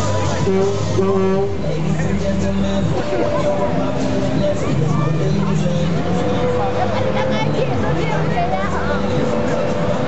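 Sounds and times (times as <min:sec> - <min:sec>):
indistinct voices: 0:00.0 - 0:10.0
ride machinery drone and whine: 0:00.0 - 0:10.0.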